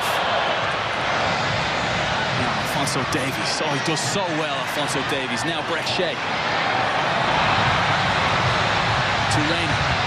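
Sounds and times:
large stadium crowd noise: 0.0 - 10.0.

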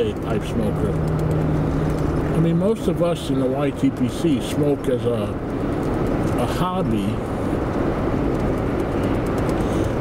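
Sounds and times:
vehicle road and engine noise: 0.0 - 10.0.

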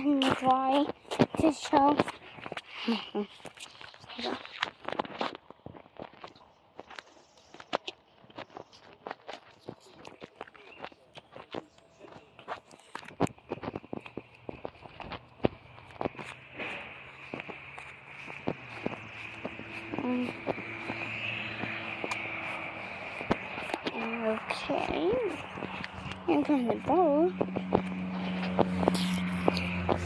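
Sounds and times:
footsteps on grass and gravel: 0.0 - 30.0
low hum: 11.6 - 30.0.

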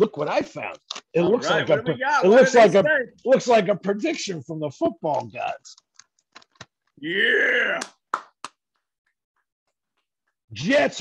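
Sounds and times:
paper crinkling: 5.0 - 7.0.

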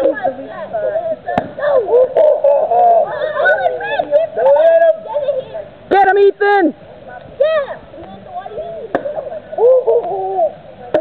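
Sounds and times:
children shouting excitedly: 1.6 - 5.6, 7.4 - 8.9.

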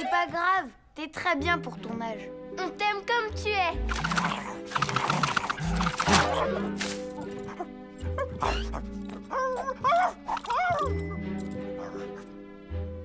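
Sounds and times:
background music with held notes: 0.0 - 13.0
cartoon dog vocal sounds: 3.9 - 11.0.

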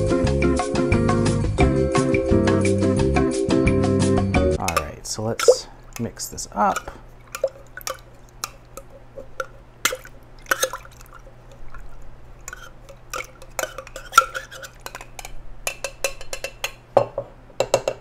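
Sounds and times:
liquid sloshing: 4.6 - 15.4
spoon clinking in metal shaker: 12.5 - 16.7.

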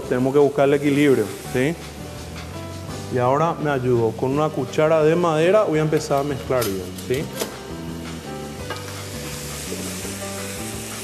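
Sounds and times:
background music: 0.0 - 11.0
food sizzling in frying pan: 0.0 - 11.0.

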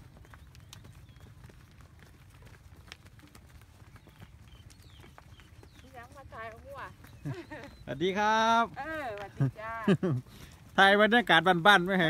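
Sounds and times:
cattle hooves on dirt: 0.0 - 12.0.

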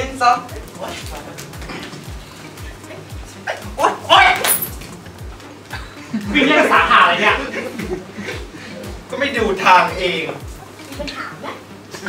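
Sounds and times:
music with low beat: 0.0 - 11.1.

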